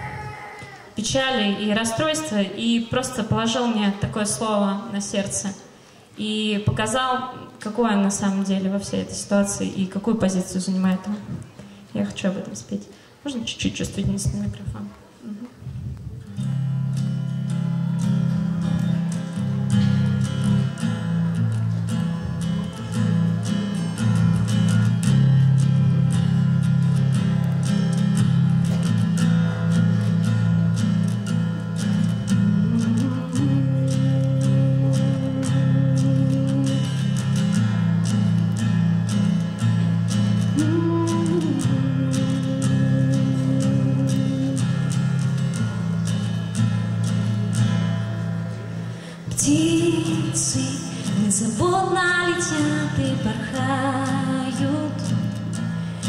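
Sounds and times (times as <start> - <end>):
acoustic guitar strumming: 16.1 - 56.0.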